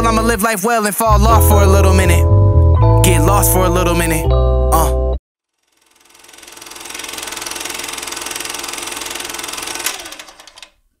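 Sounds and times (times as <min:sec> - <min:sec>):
song: 0:00.0 - 0:05.2.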